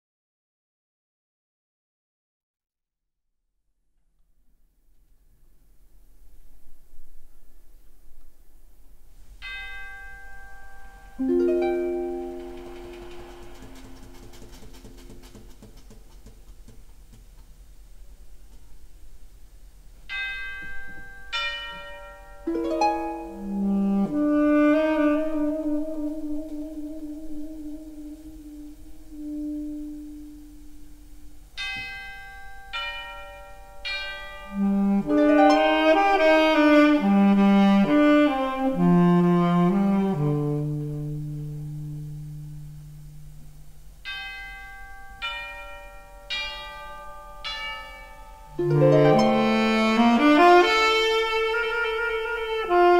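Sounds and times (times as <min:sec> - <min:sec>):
tubular bells ringing: 0:09.4 - 0:15.3, 0:44.0 - 0:50.4
brass and reed chords: 0:11.2 - 0:14.8, 0:48.6 - 0:52.9
orchestra and big band playing: 0:11.2 - 0:15.9, 0:48.6 - 0:51.3.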